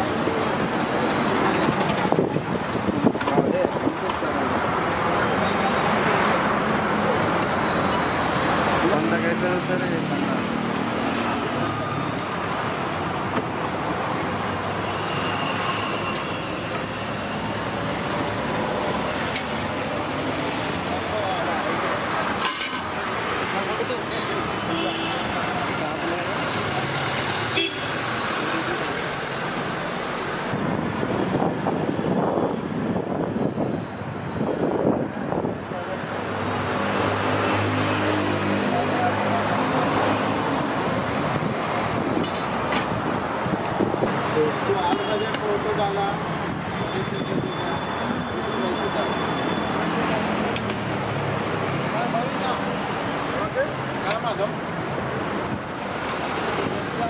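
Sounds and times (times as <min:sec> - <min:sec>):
road traffic: 0:00.0 - 0:57.0.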